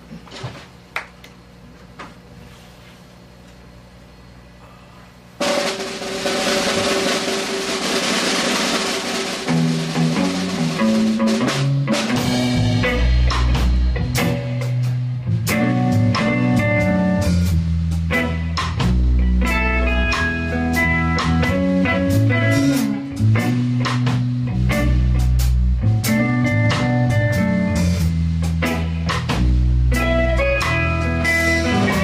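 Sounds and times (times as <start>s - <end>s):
cymbals and guitar wash: 5.4s - 32.0s
rock band playing: 5.4s - 32.0s.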